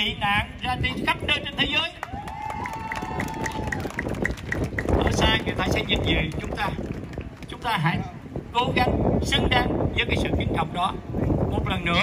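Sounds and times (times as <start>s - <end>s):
outdoor crowd noise: 0.0s - 12.0s.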